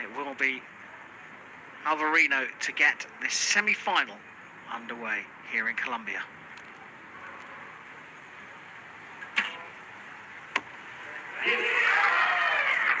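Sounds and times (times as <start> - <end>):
crowd cheering loudly: 11.1 - 13.0.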